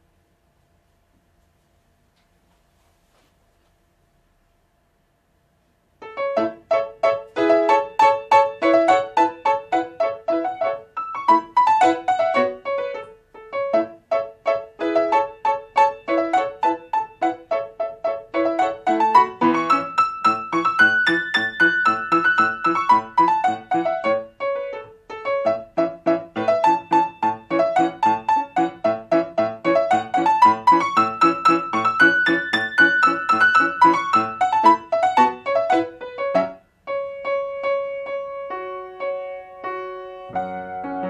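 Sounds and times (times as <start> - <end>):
grand piano playing short notes: 6.0 - 41.0.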